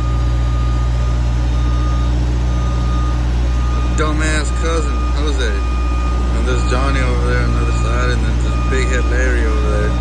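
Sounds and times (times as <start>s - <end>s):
lift engine running: 0.0s - 10.0s
thin high tone: 0.0s - 10.0s.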